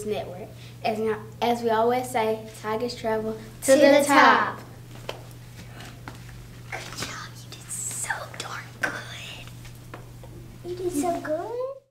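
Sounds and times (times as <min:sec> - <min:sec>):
low electrical hum: 0:00.0 - 0:11.9
person whispering: 0:07.0 - 0:09.5.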